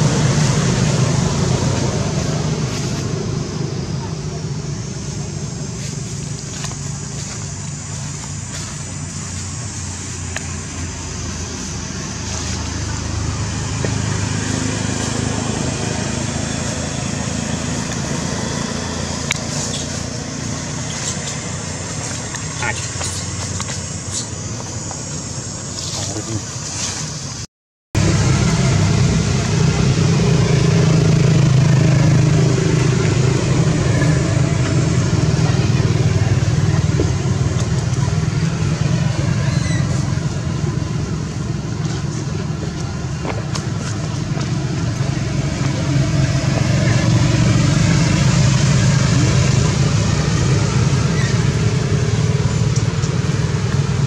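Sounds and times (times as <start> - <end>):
indistinct voices: 0.0 - 26.6, 28.0 - 54.0
road traffic rumble: 0.0 - 54.0.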